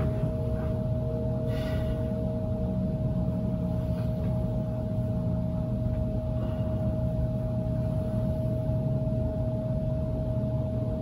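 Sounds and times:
constant held tone: 0.0s - 11.0s
low droning hum: 0.0s - 11.0s.

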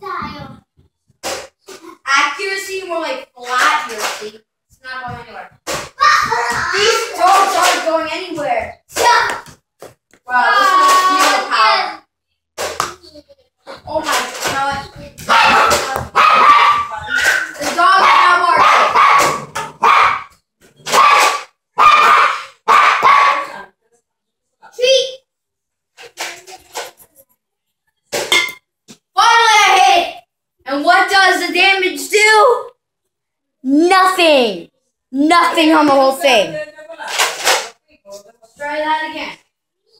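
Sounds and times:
boy talking and exclaiming: 5.1s - 9.6s, 10.3s - 12.1s, 12.8s - 19.0s, 24.6s - 25.2s, 29.2s - 32.8s, 33.6s - 36.8s.

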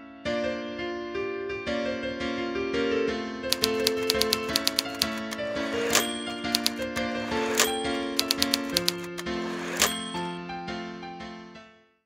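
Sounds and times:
typewriter keystroke clacks: 3.5s - 10.2s
piano music: 3.5s - 11.5s.

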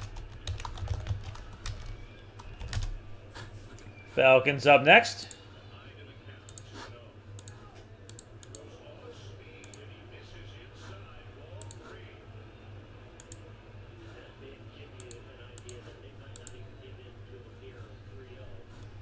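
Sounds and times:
steady low hum: 0.0s - 19.0s
computer clicks: 6.5s - 6.7s, 7.4s - 8.6s, 9.6s - 9.8s, 11.6s - 11.8s, 13.2s - 13.4s, 15.0s - 16.6s.

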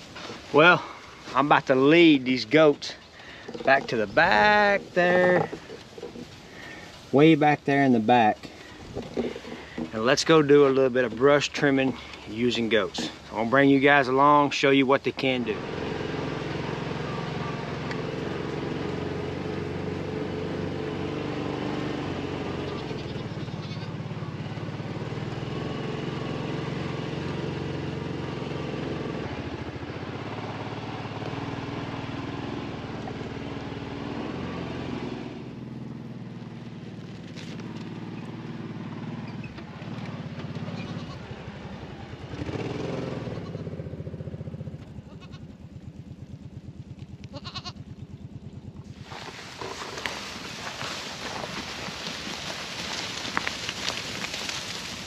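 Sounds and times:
vehicle engine running: 0.0s - 55.0s
goats bleating: 22.5s - 24.0s, 40.8s - 41.2s, 45.1s - 45.4s, 47.3s - 47.8s.

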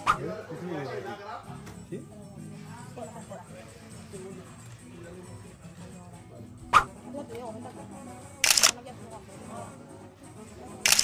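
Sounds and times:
faint background chatter: 0.0s - 11.0s
camera shutter double click: 8.4s - 8.8s.

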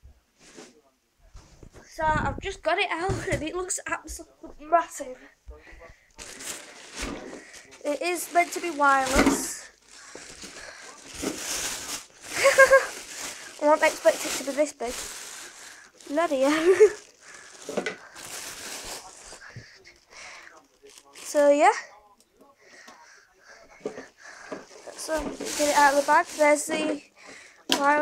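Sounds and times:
plastic wrapping crinkling: 6.1s - 22.0s, 23.9s - 27.1s.

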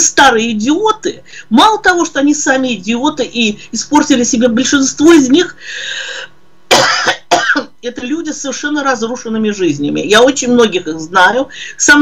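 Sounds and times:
woman coughing: 6.7s - 7.8s.

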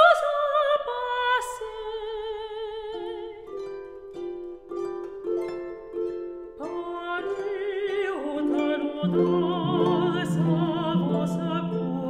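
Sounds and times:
woman singing with vibrato: 0.0s - 3.5s, 6.6s - 12.0s
harp plucking notes: 3.0s - 12.0s.

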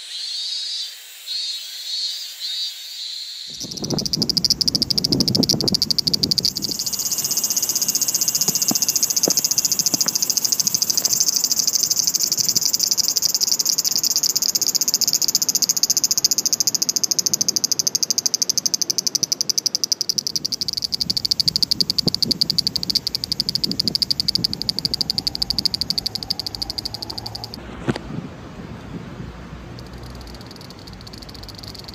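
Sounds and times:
insect chorus buzzing: 0.0s - 27.6s, 29.7s - 31.9s.

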